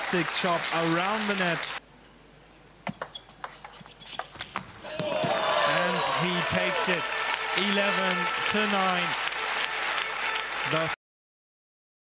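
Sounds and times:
crowd noise: 4.8 - 11.0.

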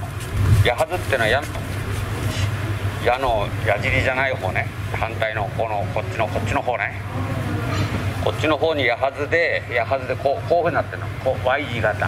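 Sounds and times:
low hum of room noise: 0.0 - 12.0.

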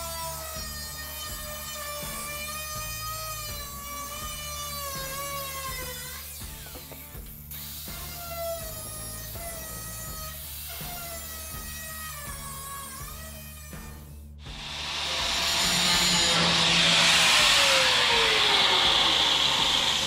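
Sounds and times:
angle grinder cutting sheet steel: 14.5 - 20.0.

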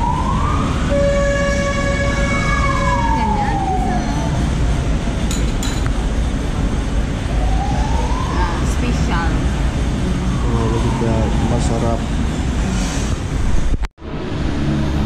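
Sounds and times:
siren wailing: 0.0 - 4.6, 7.2 - 12.1.

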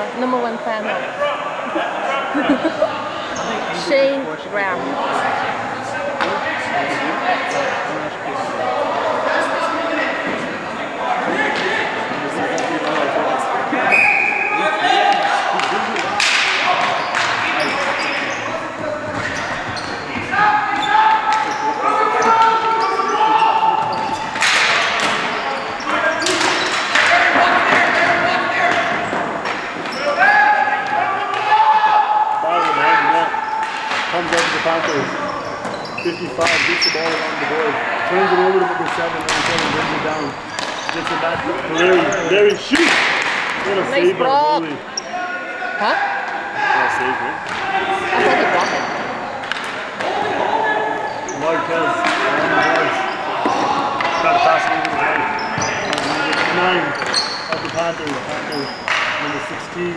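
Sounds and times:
voices calling out: 0.0 - 59.9.

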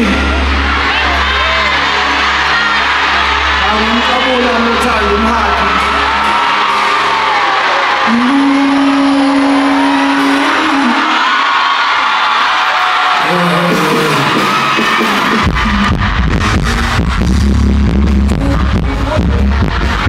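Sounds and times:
audience singing and cheering: 0.0 - 20.0
heavy bass beat with drums: 13.6 - 20.0.

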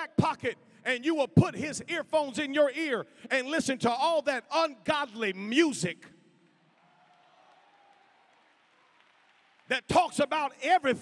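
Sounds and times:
voice echoing in a hall: 0.0 - 6.7, 9.7 - 11.0.

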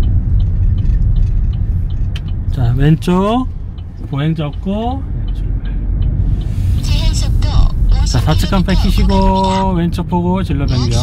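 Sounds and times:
road and engine rumble: 0.0 - 11.0
person speaking: 6.8 - 9.8, 10.6 - 11.0.

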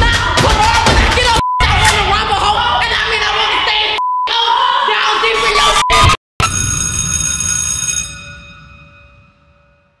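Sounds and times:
bell-like chime: 6.4 - 10.0.

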